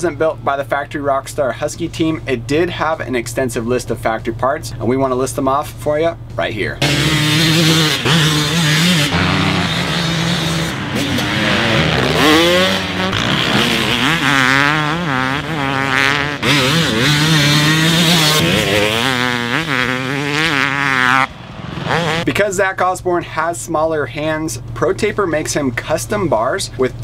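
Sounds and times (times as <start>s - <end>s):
motocross bike engine revving: 6.8s - 22.4s.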